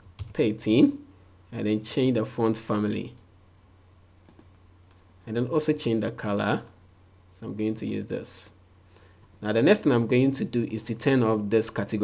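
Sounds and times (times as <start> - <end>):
low electrical hum: 0.0 - 12.0
computer mouse clicks: 4.2 - 5.0.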